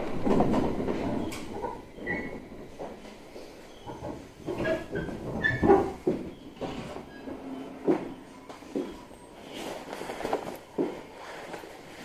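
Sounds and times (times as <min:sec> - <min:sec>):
train car clunks and knocks: 0:00.0 - 0:03.2.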